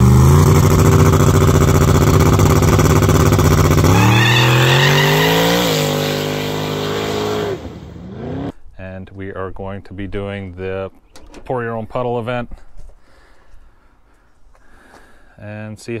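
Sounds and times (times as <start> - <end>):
truck engine revving and accelerating: 0.0 - 8.6.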